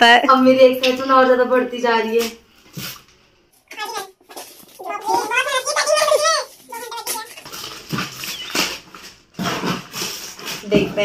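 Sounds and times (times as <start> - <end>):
wrapping paper rustling: 4.3 - 10.8.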